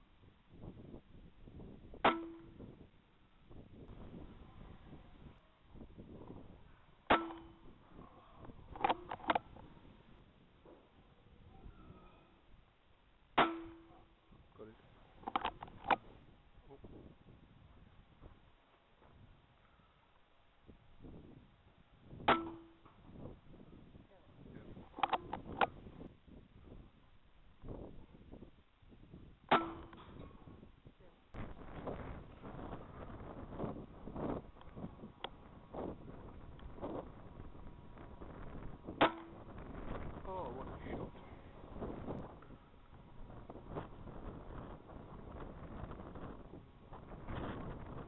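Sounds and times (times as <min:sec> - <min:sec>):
windy rustling: 0:00.0 - 0:48.0
metallic ring: 0:02.0 - 0:02.8, 0:07.1 - 0:07.9, 0:11.4 - 0:12.5, 0:13.4 - 0:14.2, 0:22.3 - 0:23.0.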